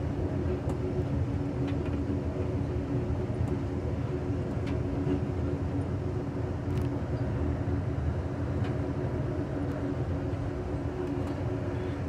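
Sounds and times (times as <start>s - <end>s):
faint steady hum: 0.0s - 12.0s
train rumbling along track: 0.0s - 12.0s.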